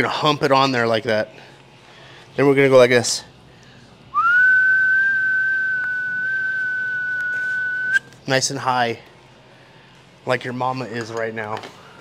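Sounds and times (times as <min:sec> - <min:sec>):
person whistling long note: 0:04.1 - 0:08.0.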